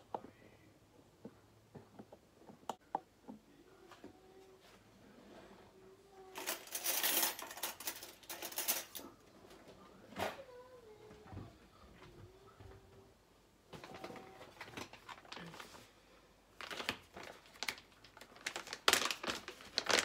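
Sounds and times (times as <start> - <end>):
cutlery rattling: 6.4 - 9.1
rustling handling noise: 13.7 - 16.0, 16.6 - 20.0.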